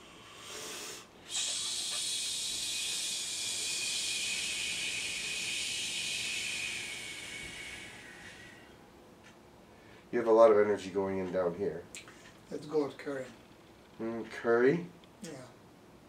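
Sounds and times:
hissing exhalation: 0:00.0 - 0:08.7.

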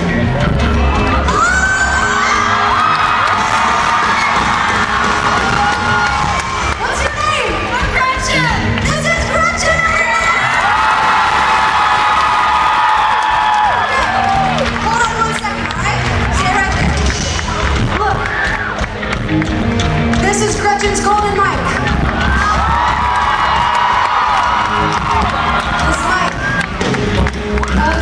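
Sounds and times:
concert crowd cheering and screaming: 0:00.0 - 0:20.0, 0:21.5 - 0:28.0.

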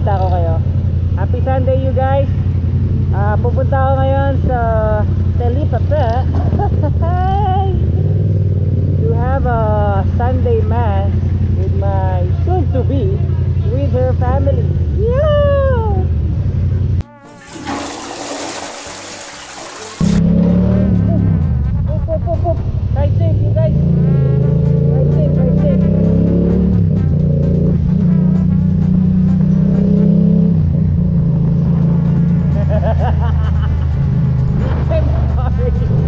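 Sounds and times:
motorcycle engine running: 0:00.0 - 0:17.1, 0:20.0 - 0:36.0.

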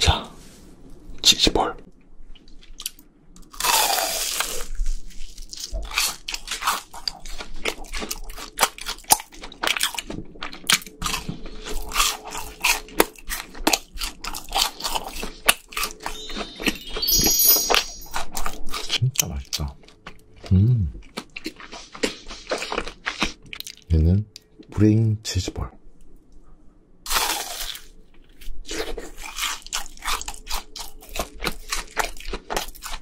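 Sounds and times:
crisp crunching and chewing: 0:02.4 - 0:16.5, 0:18.4 - 0:23.9, 0:27.1 - 0:33.0
crunching bite of fried food: 0:02.6 - 0:16.0, 0:27.1 - 0:33.0.

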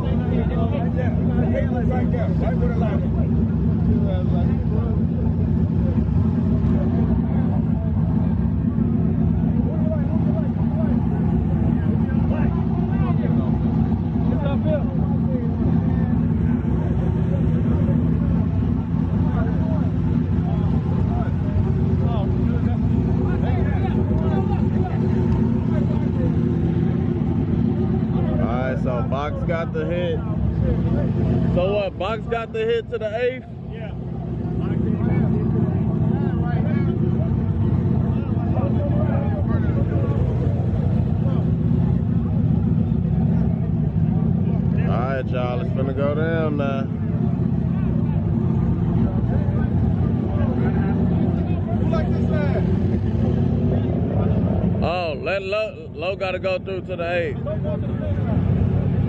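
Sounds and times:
car engine idling loudly: 0:00.0 - 0:59.0
people talking: 0:00.0 - 0:59.0.

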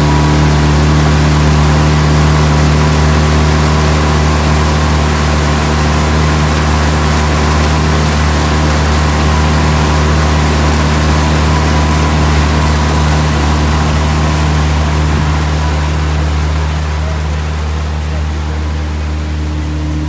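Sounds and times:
boat motor running: 0:00.0 - 0:20.0
water rushing past: 0:00.0 - 0:20.0.

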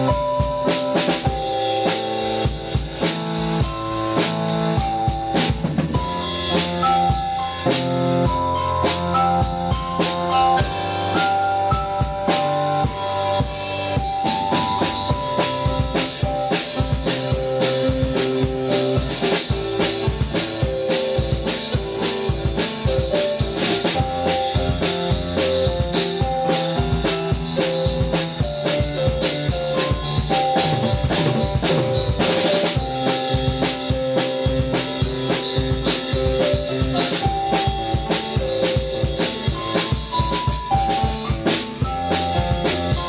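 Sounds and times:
drum kit beat: 0:00.0 - 0:43.0
electronic keyboard chords: 0:00.0 - 0:43.0.

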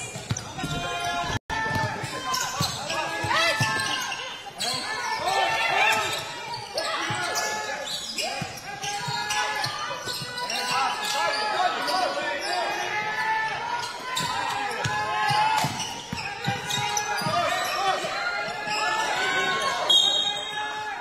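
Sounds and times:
sneakers squeaking: 0:00.0 - 0:20.8
players calling out: 0:00.0 - 0:21.0.

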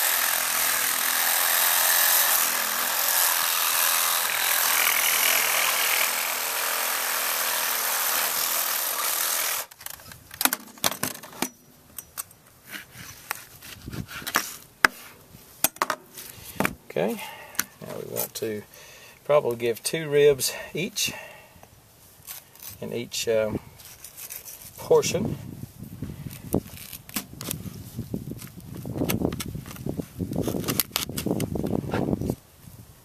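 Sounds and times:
reciprocating saw cutting bone: 0:00.0 - 0:09.7.

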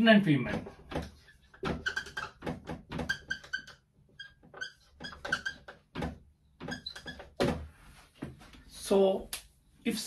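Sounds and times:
marker squeaking on a whiteboard: 0:00.4 - 0:07.9.

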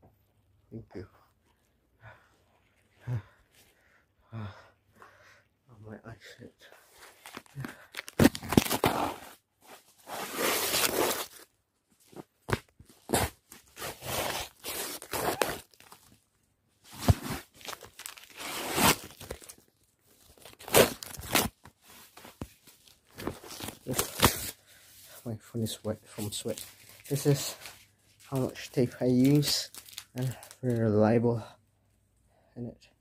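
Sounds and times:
adhesive tape ripping: 0:07.3 - 0:09.3, 0:10.1 - 0:11.4, 0:13.0 - 0:16.0, 0:17.0 - 0:19.6, 0:20.4 - 0:21.6.

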